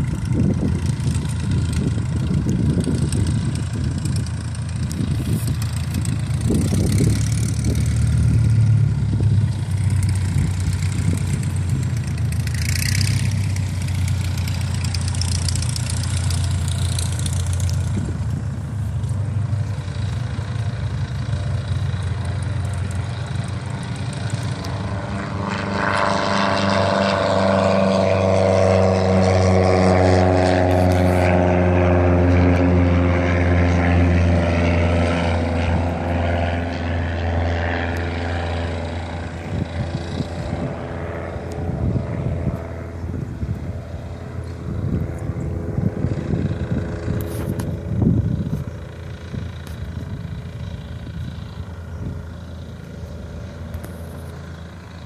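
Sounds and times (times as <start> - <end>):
louder engine with falling pitch: 0.0 - 55.0
paramotor engine running: 0.0 - 55.0.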